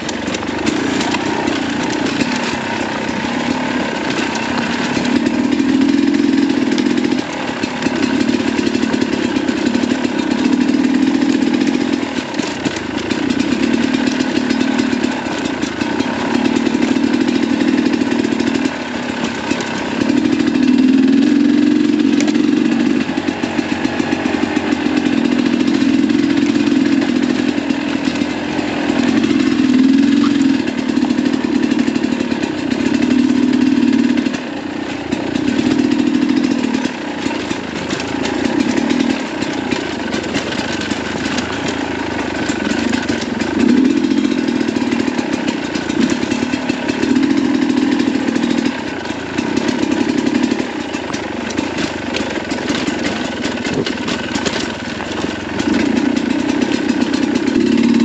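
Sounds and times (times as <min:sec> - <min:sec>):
motorcycle engine revving: 0:00.0 - 0:58.0.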